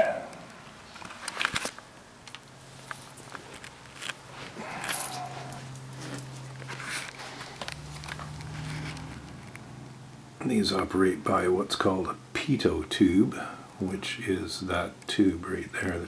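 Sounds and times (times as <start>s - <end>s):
faint low hum: 0.0s - 16.0s
camera handling clicks and rustles: 1.0s - 4.2s.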